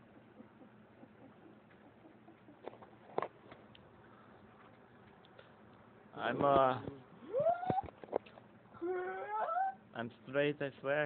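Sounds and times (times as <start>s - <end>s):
high-pitched cry: 7.2s - 7.9s, 8.8s - 9.8s.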